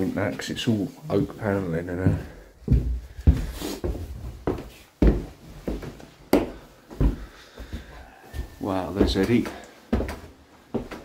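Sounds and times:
footsteps on indoor stairs: 0:00.0 - 0:11.0.

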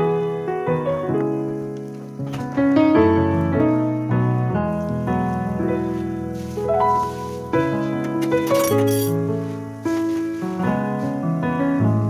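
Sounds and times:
piano music: 0:00.0 - 0:12.0.

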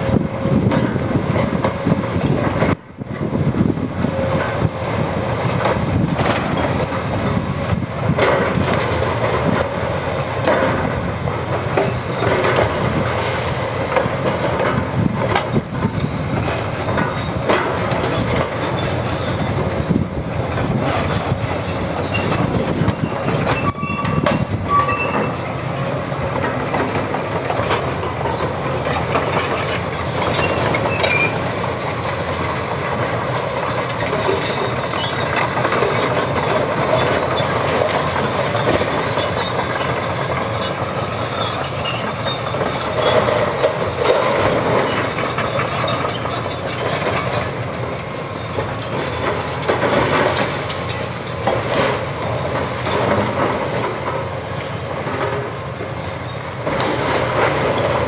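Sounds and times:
excavator diesel engine running: 0:00.0 - 0:58.0
short high squeals: 0:22.9 - 0:25.7.

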